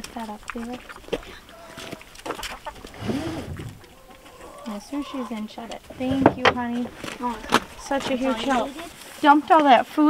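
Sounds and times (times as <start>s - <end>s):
chickens clucking: 0.0s - 9.8s
chicken call rising and falling: 1.5s - 5.4s.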